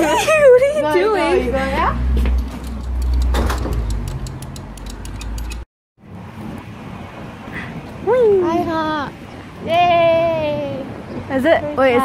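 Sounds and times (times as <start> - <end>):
city traffic noise: 0.0 - 12.0.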